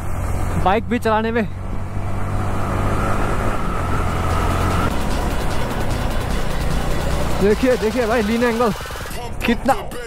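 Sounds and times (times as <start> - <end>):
motorcycle engine running: 3.0 - 10.0
music: 4.4 - 10.0.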